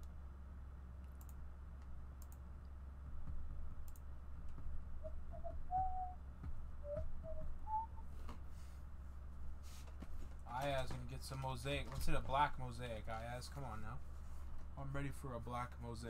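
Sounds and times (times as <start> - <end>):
low electrical hum: 0.0 - 16.0
faint clicks: 1.0 - 2.8, 3.8 - 4.6
soft whistled notes: 5.0 - 6.2, 6.8 - 8.1.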